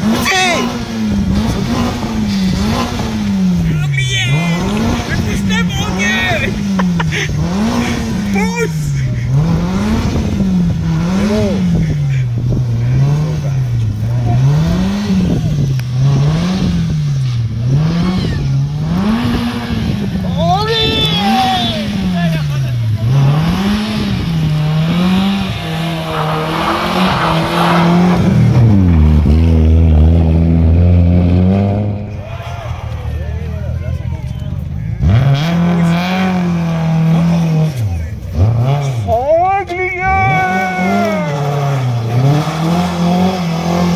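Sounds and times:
car engine revving: 0.0 - 39.2, 40.2 - 43.9
voices shouting: 3.6 - 6.9, 20.3 - 22.4, 25.2 - 28.6, 39.3 - 41.6.

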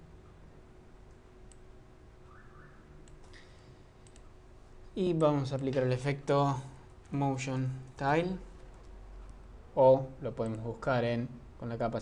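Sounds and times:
low steady background hum: 0.0 - 12.0
computer mouse clicks: 3.0 - 4.4.

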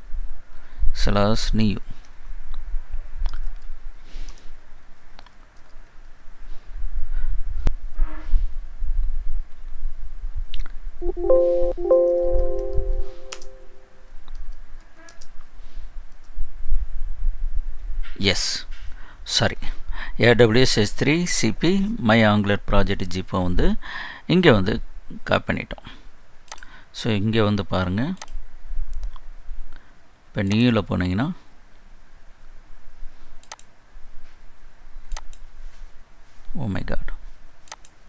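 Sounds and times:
computer mouse clicks: 3.3 - 4.5, 26.5 - 26.7, 28.2 - 28.4, 33.4 - 33.7, 35.1 - 35.5, 37.6 - 38.0
computer alert chime: 11.0 - 13.8
person speaking: 11.0 - 13.8.

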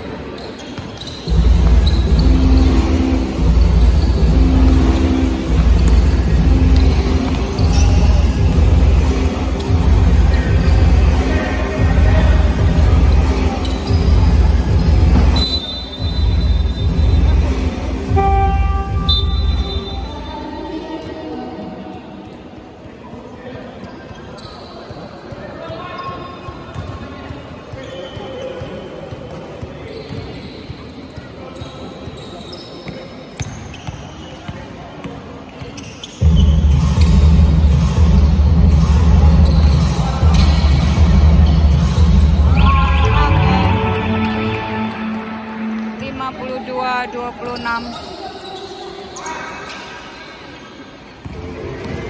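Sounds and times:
music with heavy bass: 1.3 - 15.4, 36.6 - 44.5.

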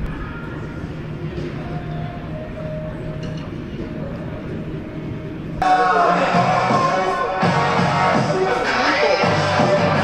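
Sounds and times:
loud music: 5.6 - 10.0.

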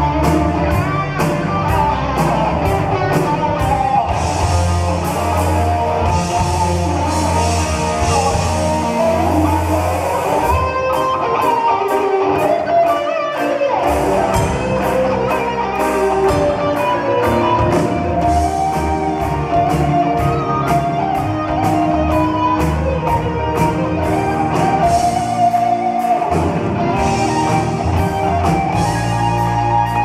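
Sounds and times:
bass guitar: 0.0 - 30.0
drums: 0.0 - 30.0
electric guitar solo: 0.0 - 30.0.

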